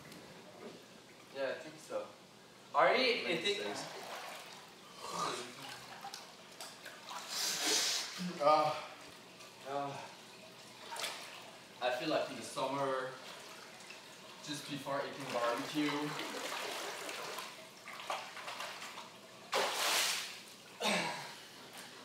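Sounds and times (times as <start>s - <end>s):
water splashing in pool: 3.6s - 4.8s, 5.5s - 8.2s, 9.0s - 11.8s, 13.0s - 20.8s.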